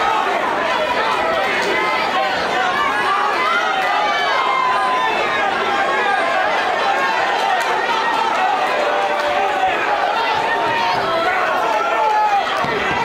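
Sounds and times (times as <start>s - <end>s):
crowd shouting and talking: 0.0s - 13.0s.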